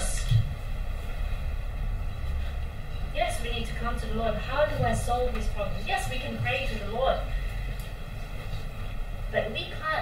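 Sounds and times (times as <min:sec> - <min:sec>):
woman speaking: 0:00.0 - 0:00.4, 0:03.1 - 0:07.5, 0:09.3 - 0:10.0
low room hum: 0:00.0 - 0:10.0.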